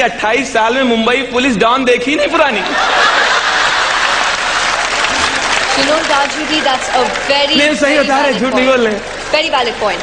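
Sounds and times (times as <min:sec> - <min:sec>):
audience applauding: 0:02.6 - 0:10.0.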